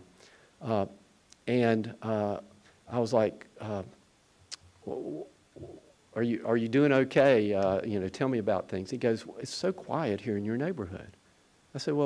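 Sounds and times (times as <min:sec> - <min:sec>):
faint mouth click: 0:04.5 - 0:04.7
man's throat rasping: 0:04.5 - 0:05.9.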